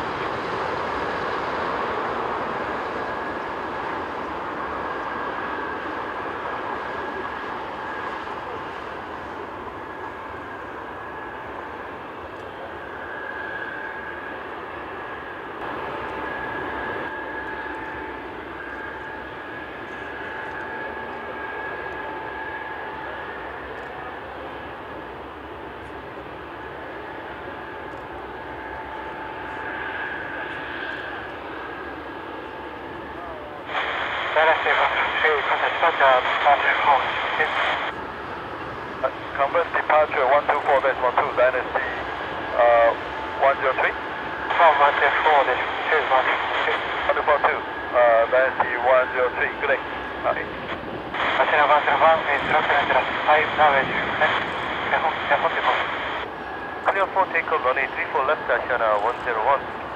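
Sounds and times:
jet engines whining at taxi: 0.0s - 59.9s.

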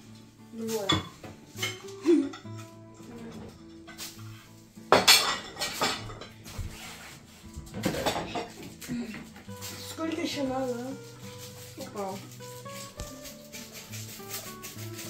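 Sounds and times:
faint music: 0.0s - 15.0s
cutlery scraping ceramic plates: 0.7s - 7.0s, 7.6s - 15.0s.

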